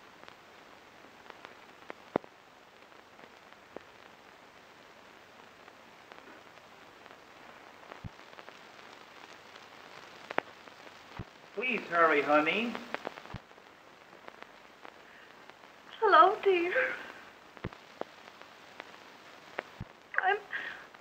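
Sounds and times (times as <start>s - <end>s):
film soundtrack hiss: 0.0s - 21.0s
clicks and pops: 10.1s - 11.6s, 12.7s - 16.0s, 17.4s - 20.2s.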